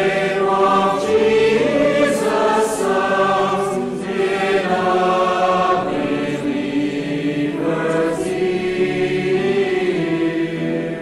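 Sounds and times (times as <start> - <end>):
choir singing slowly: 0.0 - 11.0.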